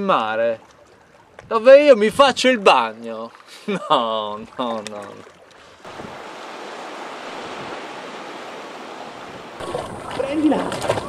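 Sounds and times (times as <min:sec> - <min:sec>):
splashing in shallow water: 0:00.0 - 0:11.0
sea waves washing: 0:04.4 - 0:11.0.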